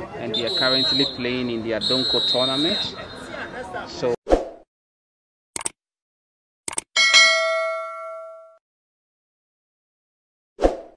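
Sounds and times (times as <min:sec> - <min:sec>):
notification bell ding: 0:07.0 - 0:08.6.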